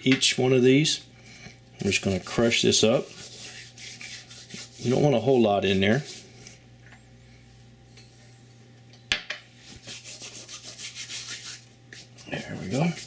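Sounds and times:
dried herbs rubbed between palms: 2.3s - 6.3s, 9.6s - 13.0s.

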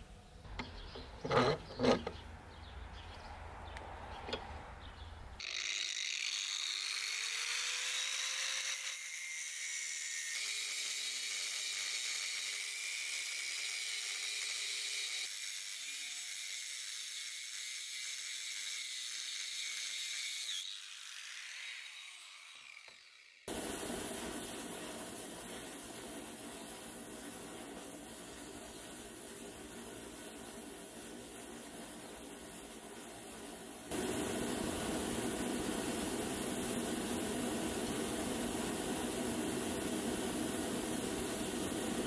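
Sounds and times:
angle grinder cutting steel: 5.4s - 23.5s
steady hiss: 23.5s - 42.0s.

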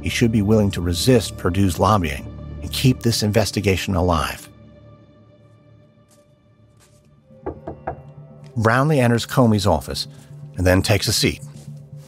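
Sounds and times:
soft sustained music: 0.0s - 12.0s
knocking on a door: 7.4s - 8.1s.

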